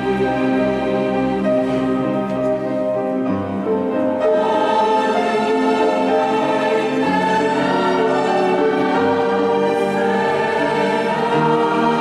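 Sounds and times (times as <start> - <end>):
choir singing long notes: 0.0 - 2.4, 4.0 - 12.0.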